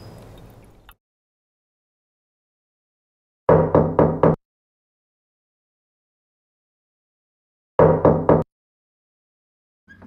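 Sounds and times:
knocks on a door: 3.5s - 4.4s, 7.8s - 8.5s.

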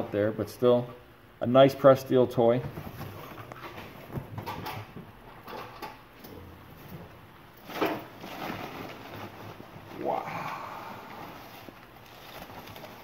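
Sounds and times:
packing paper rustling: 7.6s - 13.0s.

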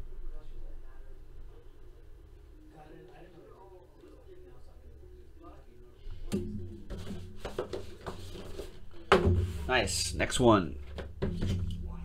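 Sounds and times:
hands handling cardboard box: 6.9s - 8.8s.

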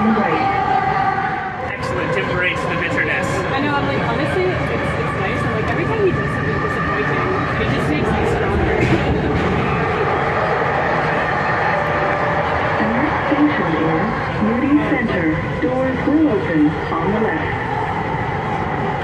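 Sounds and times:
train car rumble: 1.6s - 19.0s.

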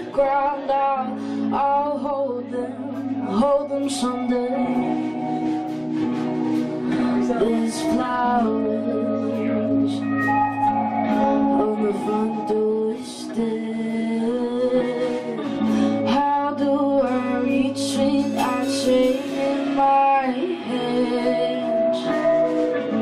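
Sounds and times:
strummed guitar: 0.0s - 23.0s
woman singing: 0.0s - 23.0s.

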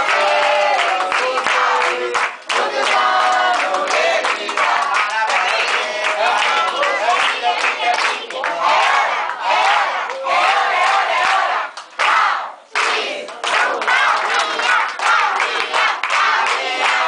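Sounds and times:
people singing and shouting: 0.0s - 17.0s
rhythmic clapping: 0.0s - 17.0s.

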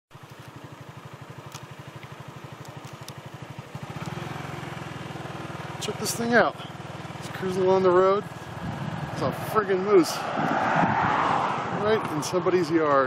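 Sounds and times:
motorcycle engine running: 0.1s - 13.0s.

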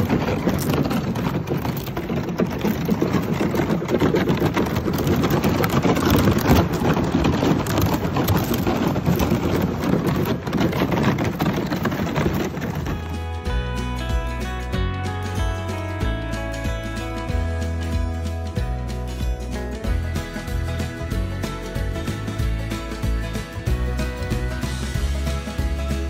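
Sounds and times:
ice cracking against kayak hull: 0.0s - 13.2s.

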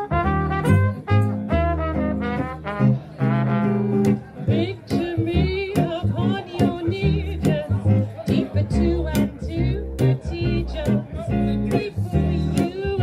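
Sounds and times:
acoustic guitar: 0.0s - 13.0s
upright double bass: 0.0s - 13.0s
woman singing with vibrato: 4.5s - 13.0s.

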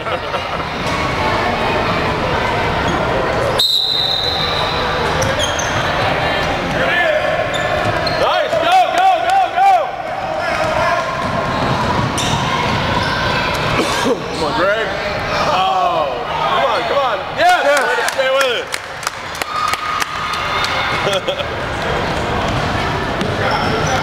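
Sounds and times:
voices of players and spectators: 0.0s - 24.0s.

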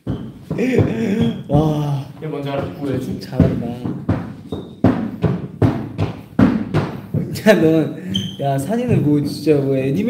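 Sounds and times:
sharp thumps: 2.5s - 7.6s.

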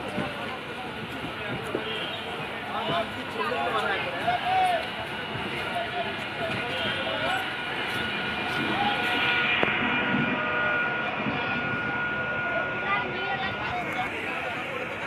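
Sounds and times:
train rumbling along track: 0.0s - 15.0s
voices chattering: 0.0s - 15.0s
thin high whine: 6.7s - 15.0s.

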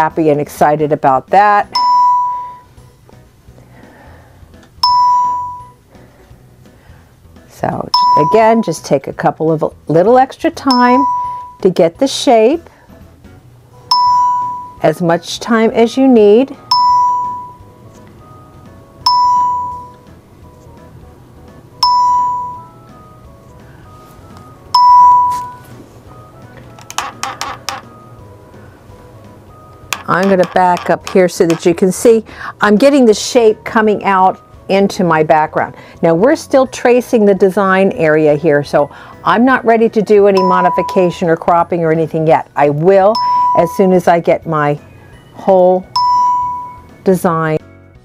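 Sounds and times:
soft background music: 0.0s - 48.0s
electronic chime ding: 1.8s - 2.7s, 4.8s - 5.8s, 8.0s - 8.6s, 10.7s - 11.6s, 13.9s - 14.9s, 16.7s - 17.7s, 19.1s - 20.0s, 21.8s - 22.8s, 24.8s - 25.7s, 40.4s - 41.2s, 43.2s - 43.9s, 46.0s - 46.9s
clicks and rustling: 26.6s - 27.9s.

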